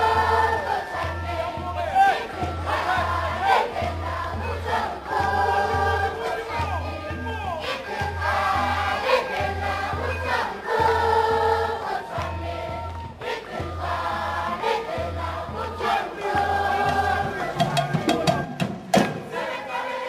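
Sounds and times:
children singing in chorus: 0:00.0 - 0:06.6, 0:07.6 - 0:18.2, 0:19.2 - 0:20.0
hand-clapping: 0:06.2 - 0:06.5.

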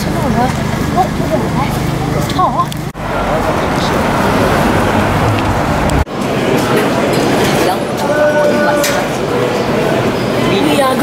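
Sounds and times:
road traffic passing: 0:00.0 - 0:08.1
crowd chatter: 0:00.0 - 0:11.0.

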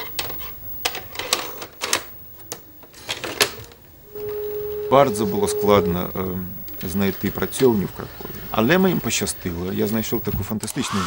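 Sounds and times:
steady single-pitched tone: 0:04.0 - 0:07.5.

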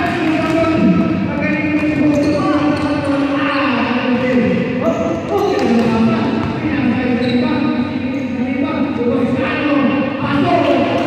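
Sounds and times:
basketball bouncing on court floor: 0:00.0 - 0:03.4, 0:04.2 - 0:07.4.

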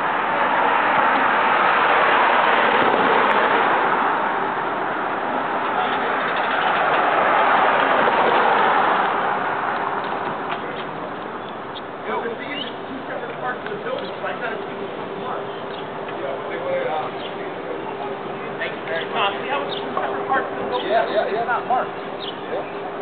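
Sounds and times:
passing vehicles rushing: 0:00.0 - 0:23.0.

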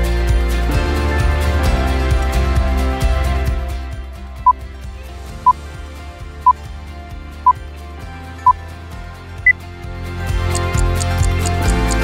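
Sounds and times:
background music: 0:00.0 - 0:12.0
countdown timer beeps: 0:10.5 - 0:12.0.

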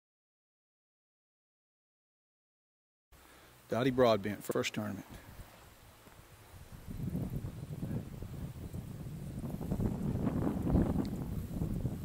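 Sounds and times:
wind buffeting microphone: 0:06.3 - 0:12.0.

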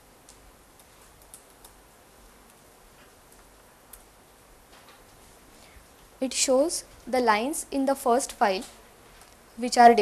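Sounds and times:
faint room hiss: 0:00.0 - 0:10.0
computer keyboard clicks: 0:00.3 - 0:01.8.

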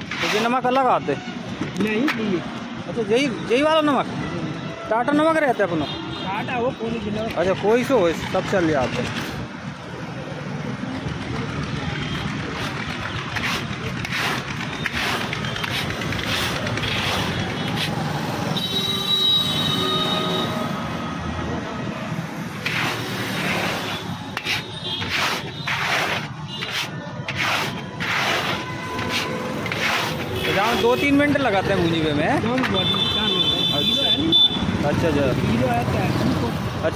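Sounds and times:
traffic noise: 0:00.0 - 0:36.9.

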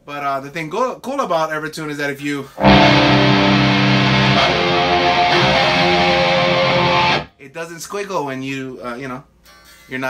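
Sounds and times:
distorted electric guitar chords: 0:02.6 - 0:07.3.

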